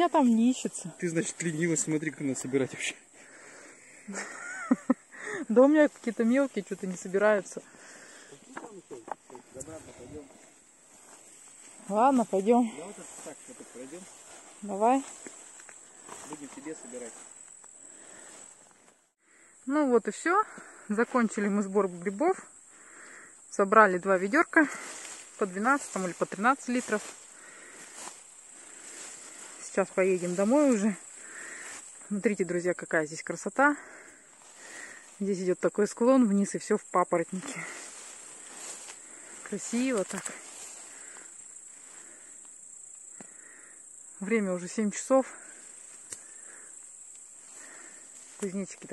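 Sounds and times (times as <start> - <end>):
grasshoppers chirring: 0.0 - 48.9.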